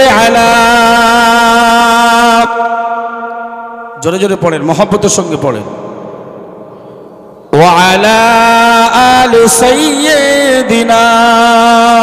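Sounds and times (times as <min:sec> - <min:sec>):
man chanting through echoing microphone: 0:00.0 - 0:12.0.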